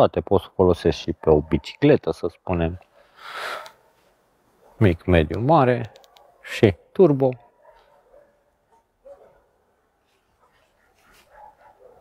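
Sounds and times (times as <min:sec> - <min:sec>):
distant dog barking: 0:01.1 - 0:01.8, 0:02.9 - 0:05.0, 0:05.9 - 0:12.0.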